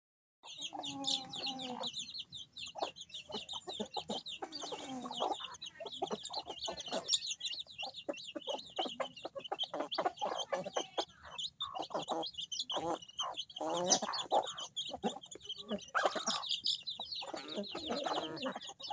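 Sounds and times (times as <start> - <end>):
chicks peeping: 0.4 - 18.9
hens clucking: 0.4 - 18.9.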